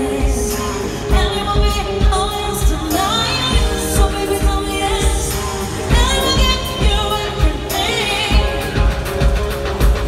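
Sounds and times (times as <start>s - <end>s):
live pop song with female vocal: 0.0s - 10.0s.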